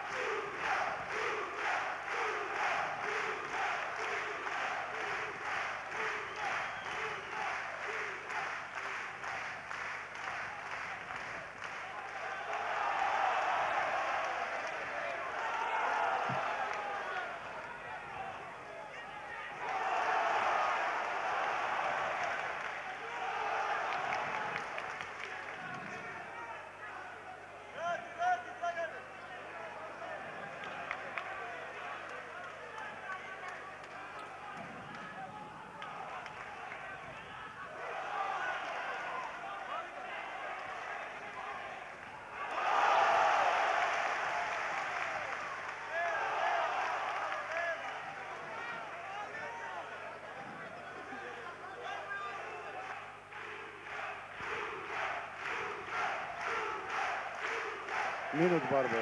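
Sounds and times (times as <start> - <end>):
crowd shouting: 12.2 - 25.4, 51.2 - 59.0.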